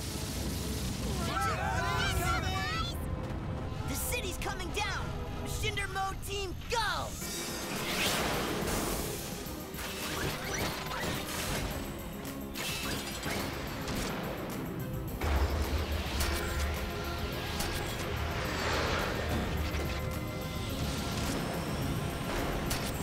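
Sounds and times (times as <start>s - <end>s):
driving action music: 0.0s - 23.0s.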